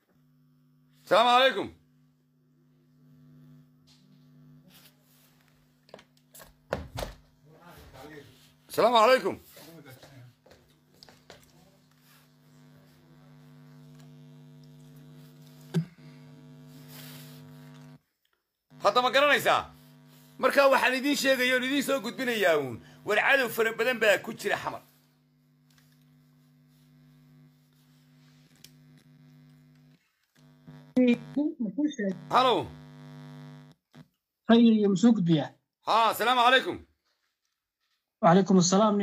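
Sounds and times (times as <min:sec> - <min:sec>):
electrical mains hum: 0:00.0 - 0:18.0, 0:18.7 - 0:34.0
faint electrical hum: 0:18.7 - 0:31.4.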